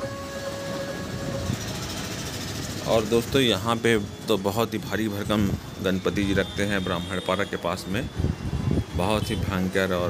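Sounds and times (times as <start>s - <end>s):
held musical note: 0.0s - 2.1s.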